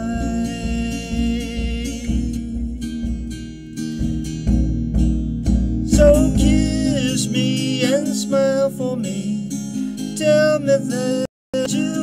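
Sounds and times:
man singing: 0.0s - 3.1s, 5.8s - 12.0s
acoustic guitar strumming: 0.0s - 12.0s.

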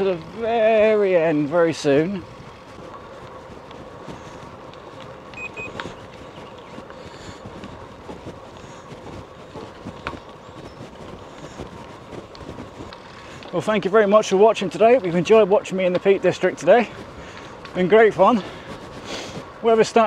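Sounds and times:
bike clicks and rattles: 0.0s - 20.0s
bike tyres on tarmac: 0.0s - 20.0s.

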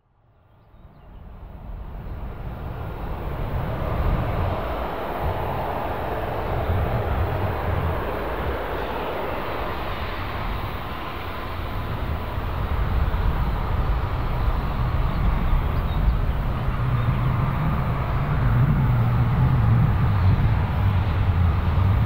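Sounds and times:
wind rumbling on microphone: 0.6s - 22.0s
distant turboprop engine drone: 1.2s - 22.0s.

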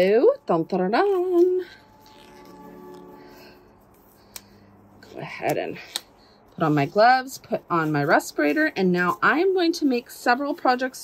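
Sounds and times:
faint steady hum: 0.0s - 10.8s.

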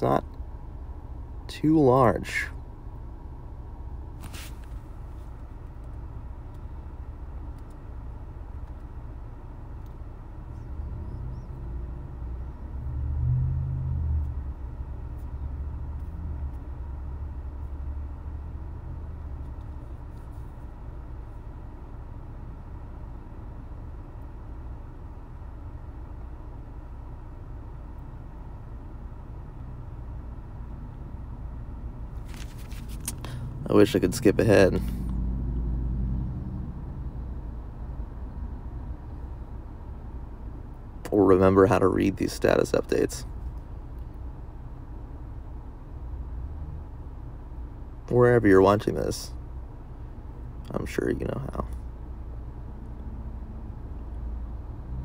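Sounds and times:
low background rumble: 0.0s - 55.0s.

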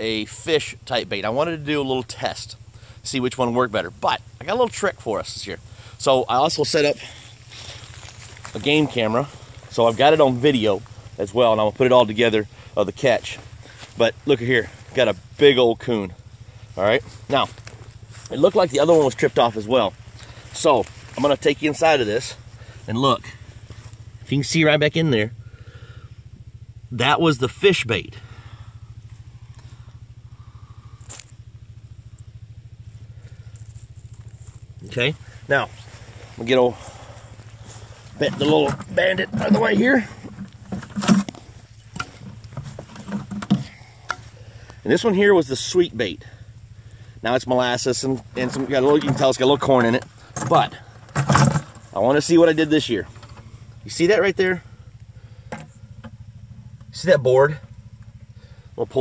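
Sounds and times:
engine idling: 0.0s - 59.0s
low throbbing hum: 0.0s - 59.0s.

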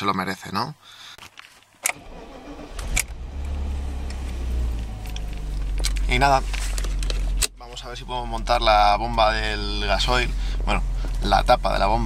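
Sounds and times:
diesel engine idling: 2.1s - 12.0s.

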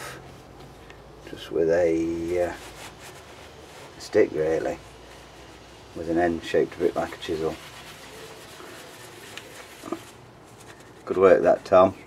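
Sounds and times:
cloth rubbing on engine casing: 0.0s - 12.0s.

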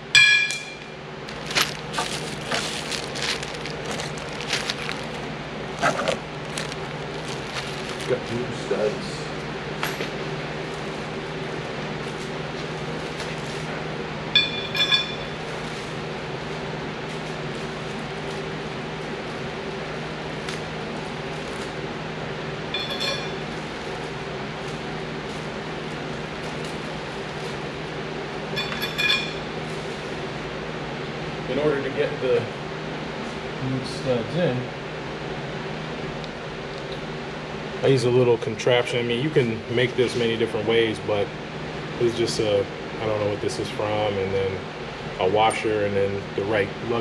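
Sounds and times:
steady background hum: 0.0s - 47.0s.

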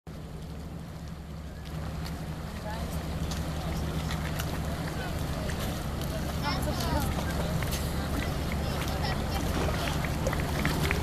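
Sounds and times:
boat engine droning: 0.1s - 11.0s
people talking: 0.2s - 11.0s.

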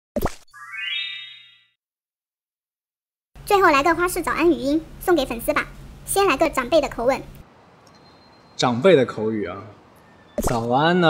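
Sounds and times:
rising chime-like tone: 0.5s - 1.7s.

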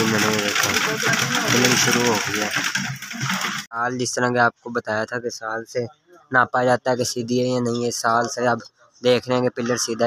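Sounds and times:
people talking: 0.0s - 3.0s, 3.7s - 10.0s.

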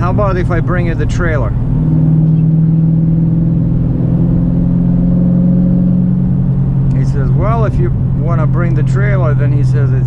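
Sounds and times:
car exhaust drone from inside: 0.0s - 10.0s
road noise: 0.0s - 10.0s.

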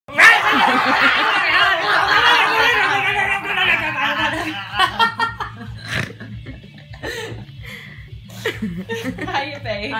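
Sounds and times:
women laughing: 0.2s - 7.6s, 8.3s - 9.6s.

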